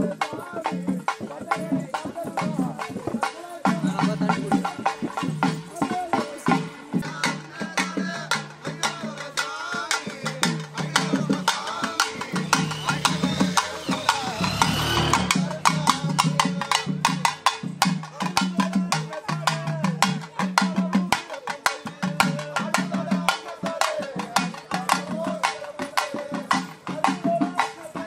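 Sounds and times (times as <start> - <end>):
drums beaten with sticks: 0.0 - 28.0
wavering higher tone: 11.5 - 15.7.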